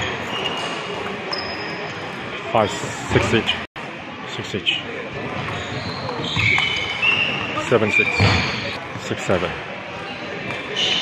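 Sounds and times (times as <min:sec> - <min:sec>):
shoes squeaking on wooden floor: 0:05.5 - 0:08.8.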